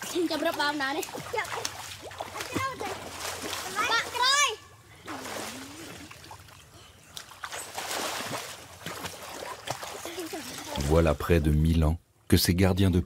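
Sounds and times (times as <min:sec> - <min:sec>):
water splashing: 0:00.0 - 0:11.4.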